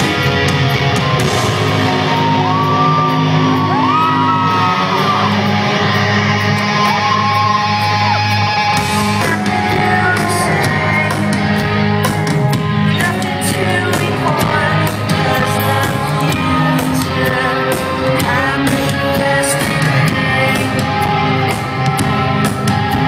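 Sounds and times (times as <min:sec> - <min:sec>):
high gliding guitar notes: 0:00.0 - 0:23.0
rock band playing live: 0:00.0 - 0:23.0.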